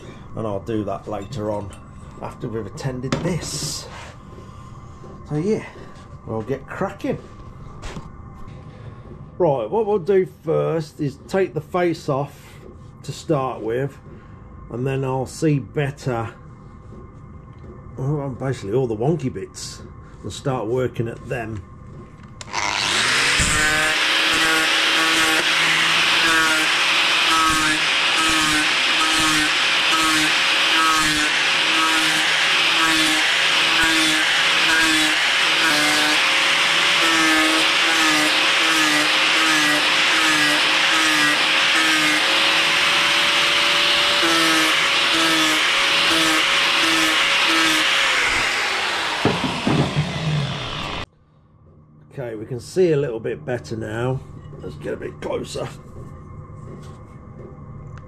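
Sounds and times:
angle grinder grinding metal: 0:22.4 - 0:51.1
grinder spinning down: 0:22.4 - 0:51.1.

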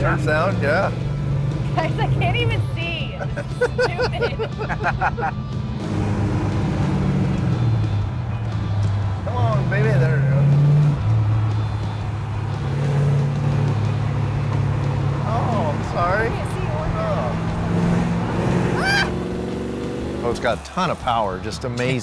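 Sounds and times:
car engine accelerating: 0:00.0 - 0:03.8, 0:04.4 - 0:22.0.

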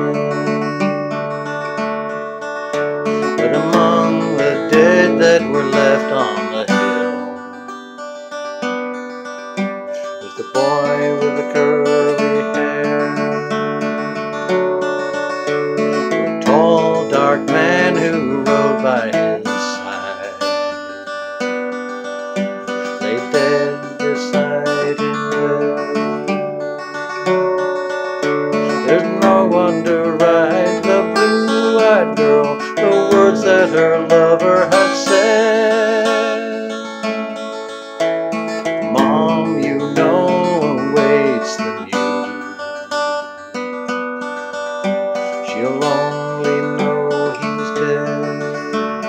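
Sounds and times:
man singing: 0:00.0 - 0:00.7, 0:03.2 - 0:07.4, 0:09.9 - 0:13.8, 0:15.9 - 0:21.0, 0:22.8 - 0:26.4, 0:28.6 - 0:37.5, 0:38.8 - 0:42.6, 0:45.4 - 0:49.0
acoustic guitar strummed and picked: 0:00.0 - 0:49.0.

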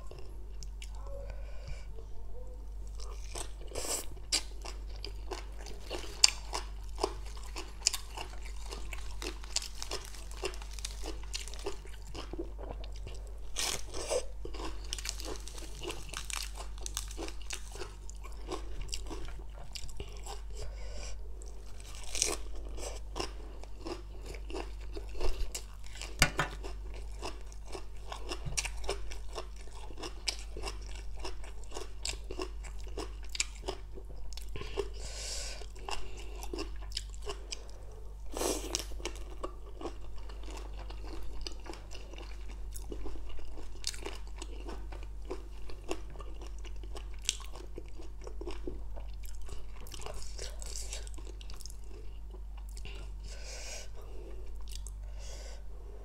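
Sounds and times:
chewing and crunching salad: 0:00.0 - 0:01.9, 0:02.8 - 0:55.5.

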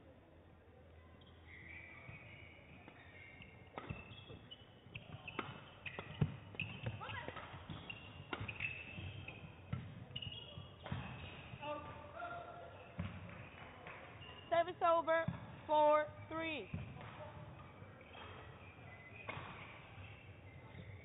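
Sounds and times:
shoes squeaking on court: 0:01.2 - 0:12.0, 0:12.6 - 0:21.0
rackets hitting shuttlecock: 0:02.7 - 0:12.0, 0:16.7 - 0:20.2.

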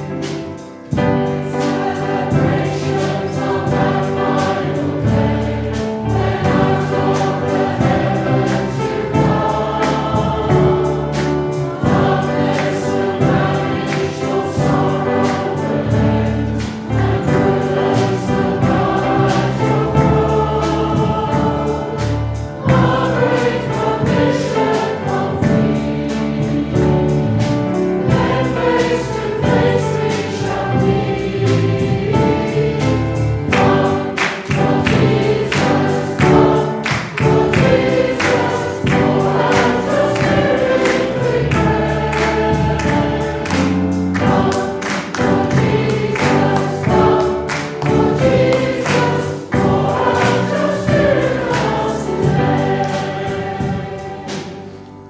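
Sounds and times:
group singing worship song: 0:00.0 - 0:55.0
instrumental backing with beat: 0:00.0 - 0:55.0.

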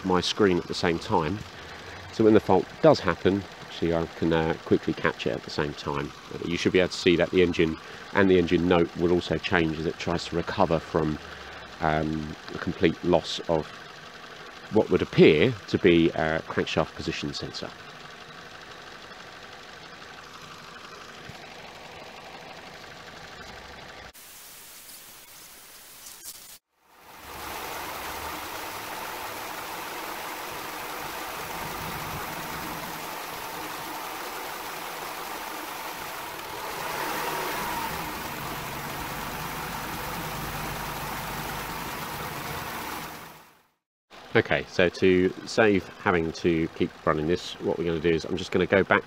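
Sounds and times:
car engine idling: 0:00.0 - 0:24.2, 0:26.8 - 0:49.0.

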